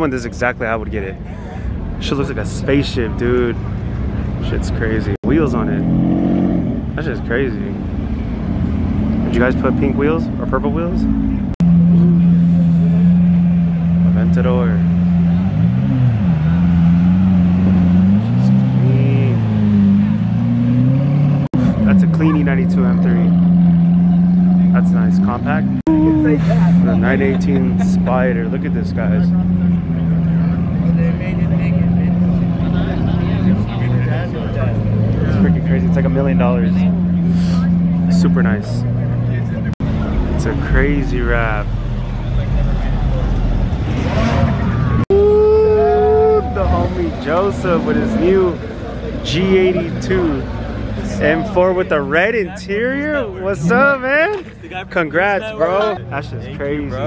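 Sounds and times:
car engine rumbling past: 0.2s - 55.2s
car engine revving past: 28.9s - 45.1s.

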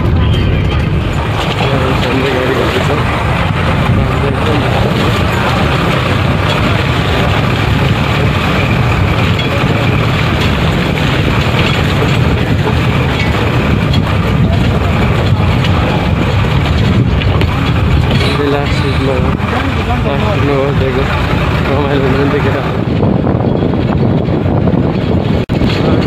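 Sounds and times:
bus engine and road noise: 0.0s - 26.0s.

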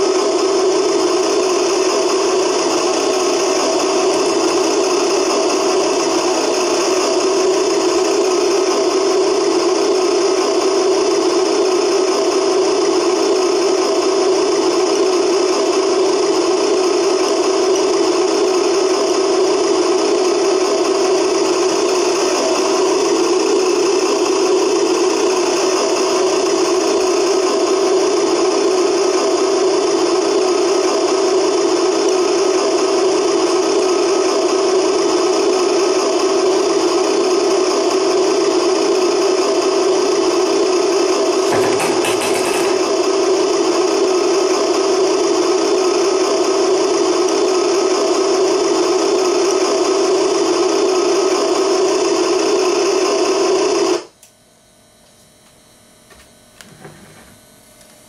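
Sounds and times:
toy tractor engine idling: 0.0s - 53.1s.

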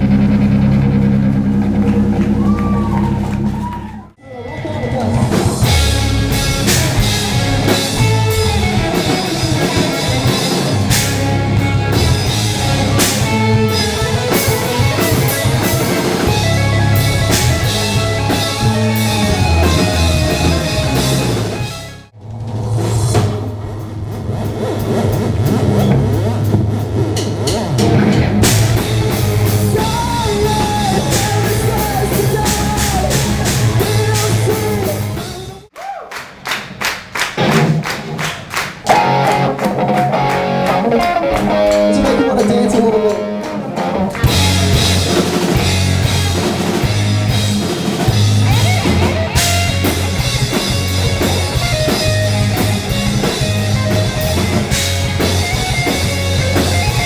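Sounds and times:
rock band playing live: 4.4s - 35.7s, 36.7s - 57.0s.

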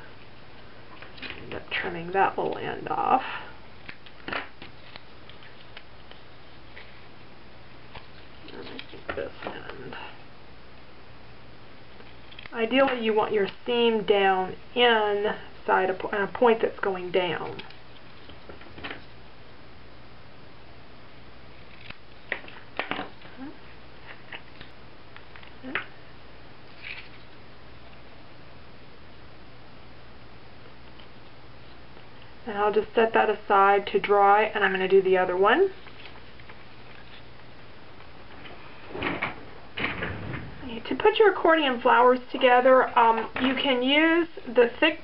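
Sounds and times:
low room hum: 0.0s - 45.0s
paper rustling: 3.8s - 7.1s, 7.9s - 9.4s, 26.7s - 27.4s, 35.8s - 37.4s.

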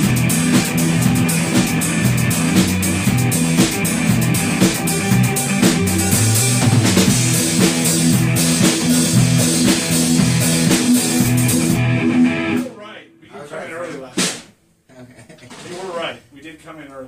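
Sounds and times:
band playing guitar and drums: 0.0s - 12.8s, 13.7s - 14.6s
people talking: 12.6s - 17.0s.

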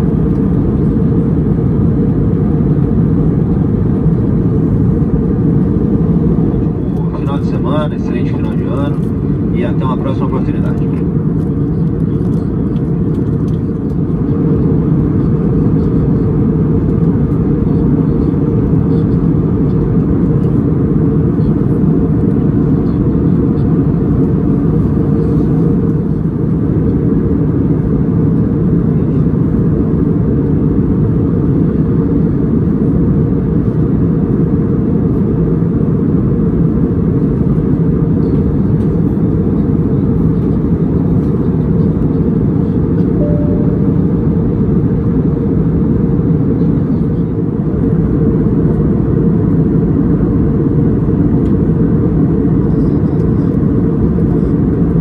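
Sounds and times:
airliner cabin engine drone: 0.0s - 55.0s.

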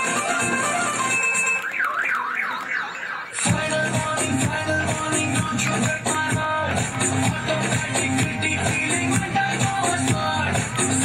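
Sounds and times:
dance music over loudspeaker: 0.0s - 11.0s
siren-like electronic wail: 0.2s - 3.6s.

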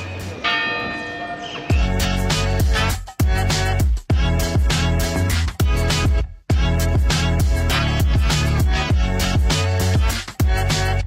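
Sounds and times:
bell ringing: 0.0s - 3.0s
music with heavy bass beat: 1.7s - 11.0s.

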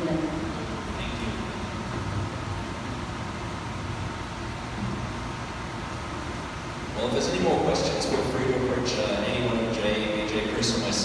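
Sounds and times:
low rumble and hiss: 0.0s - 11.0s.

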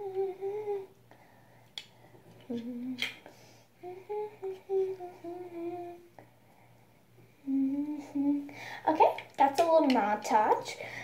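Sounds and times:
girl humming: 0.0s - 1.0s, 2.4s - 3.2s, 3.8s - 6.2s, 7.3s - 8.7s.

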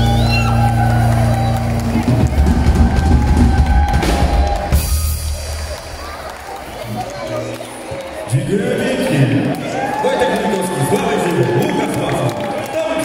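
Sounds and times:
live band playing: 0.0s - 7.4s.

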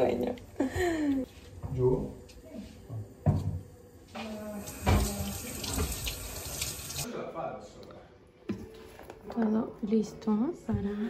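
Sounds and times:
tap running into sink: 3.2s - 7.0s.

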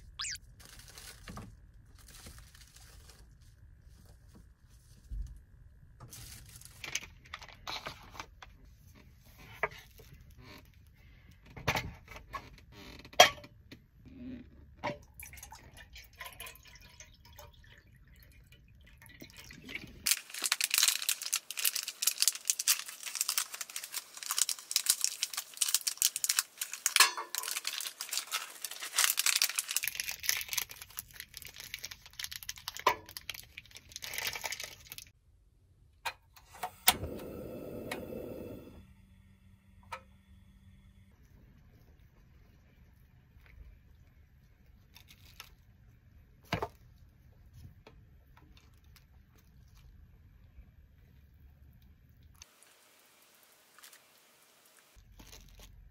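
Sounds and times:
foil crinkling: 0.2s - 5.2s, 6.0s - 7.9s, 20.0s - 35.1s, 44.9s - 45.6s, 52.4s - 55.9s
gas burner hissing: 36.5s - 40.4s.

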